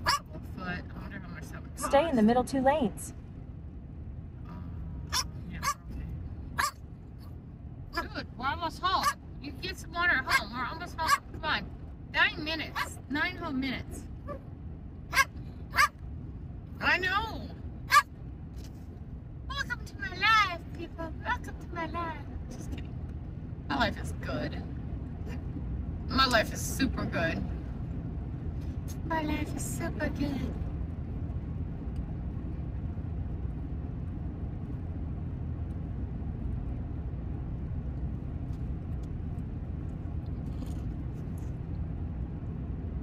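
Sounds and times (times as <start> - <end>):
dog yipping: 0.0 - 0.3, 5.1 - 5.9, 6.6 - 6.8, 15.1 - 16.0, 17.9 - 18.1
road noise hum: 0.0 - 43.0
dog whining: 6.6 - 6.8, 15.1 - 15.9.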